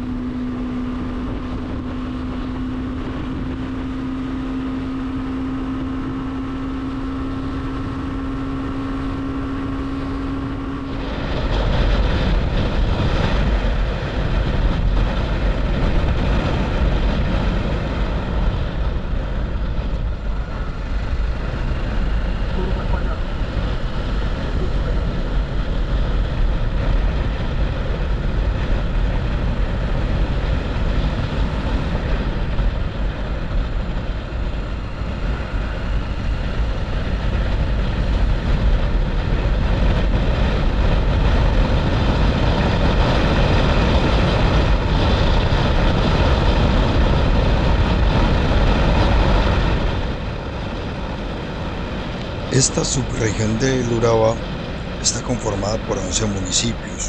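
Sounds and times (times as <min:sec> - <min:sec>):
motorcycle engine running: 0:00.0 - 0:52.6
wind rushing over camera: 0:00.0 - 0:57.0.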